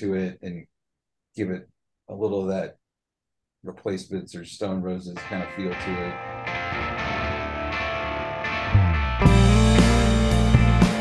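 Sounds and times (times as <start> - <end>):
reverb electric guitar chords: 5.2 - 11.0
rock band with drums: 6.5 - 11.0.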